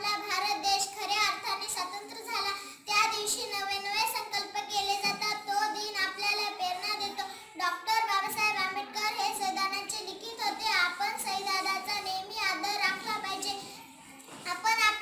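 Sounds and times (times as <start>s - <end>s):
girl singing: 0.0s - 15.0s.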